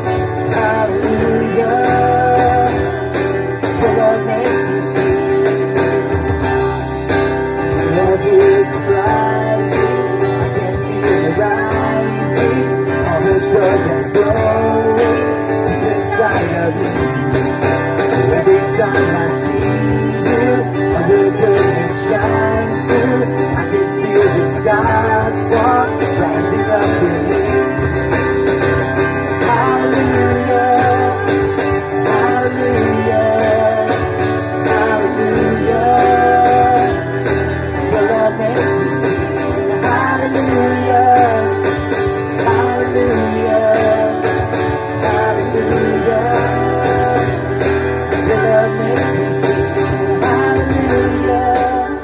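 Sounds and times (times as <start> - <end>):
man and woman singing: 0.0 - 5.7, 7.8 - 17.4, 18.1 - 27.9, 29.3 - 52.0
acoustic guitar strumming: 0.0 - 52.0
band instruments: 0.0 - 52.0.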